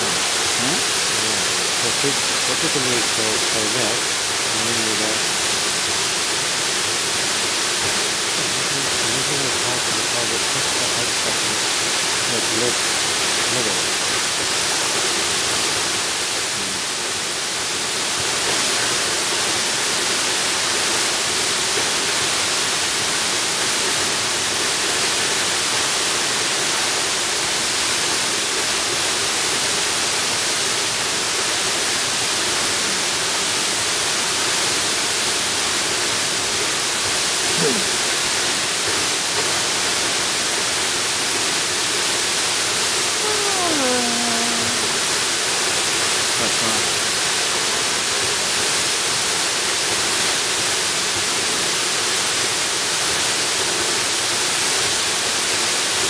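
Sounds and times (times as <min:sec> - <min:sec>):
waterfall rushing: 0:00.0 - 0:56.0.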